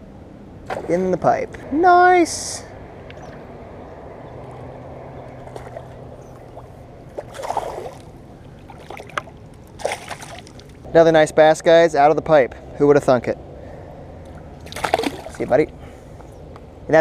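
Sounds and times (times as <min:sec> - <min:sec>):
fish splashing at water surface: 0:05.4 - 0:10.8, 0:14.6 - 0:15.5.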